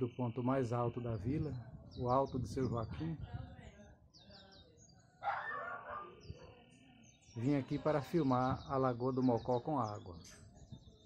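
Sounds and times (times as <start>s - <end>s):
animal call: 5.2s - 6.2s.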